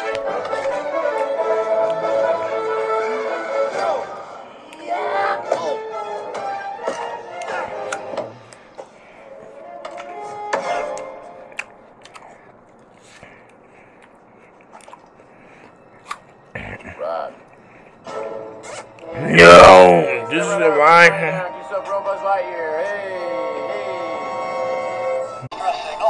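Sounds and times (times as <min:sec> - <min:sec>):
music: 0:00.0 - 0:26.0
faint voices: 0:19.1 - 0:21.6.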